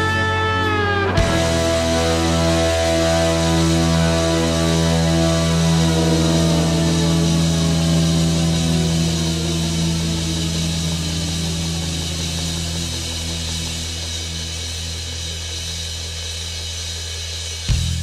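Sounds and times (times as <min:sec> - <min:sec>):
electric guitar chord ringing: 0:00.0 - 0:15.6.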